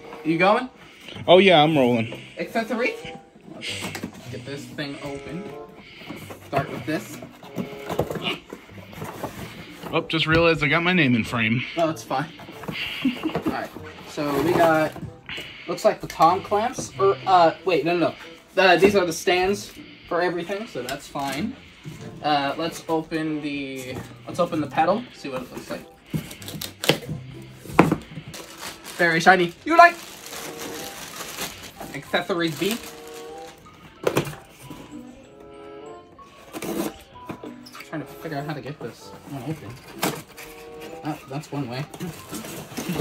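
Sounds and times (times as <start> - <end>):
cardboard packaging handled: 5.4 - 10.5, 12.2 - 15.5, 23.9 - 34.8.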